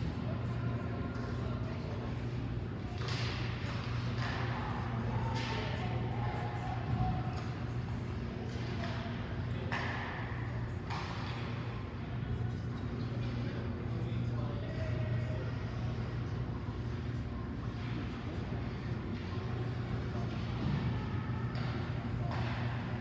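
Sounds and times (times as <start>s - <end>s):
faint players' voices: 0.0s - 23.0s
low rink hum: 0.0s - 23.0s.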